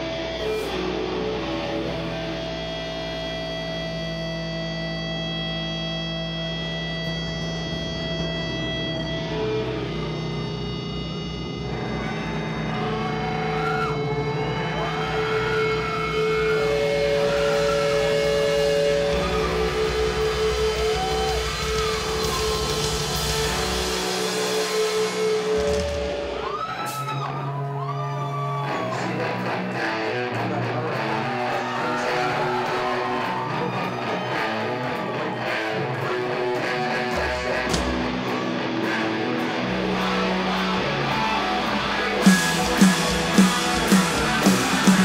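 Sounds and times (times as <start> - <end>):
amplifier feedback: 0.0 - 45.0
doom metal guitar and bass: 0.0 - 45.0
sliding guitar tones: 0.0 - 45.0.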